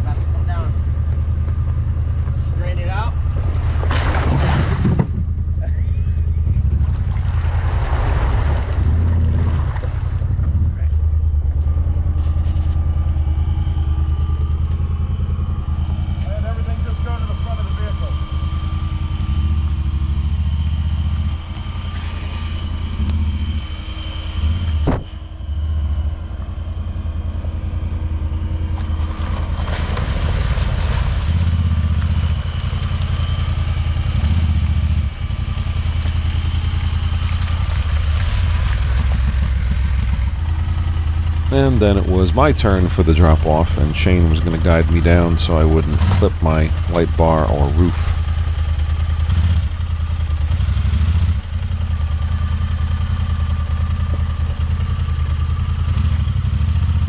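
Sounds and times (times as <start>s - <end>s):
utv engine at low revs: 0.0s - 57.0s.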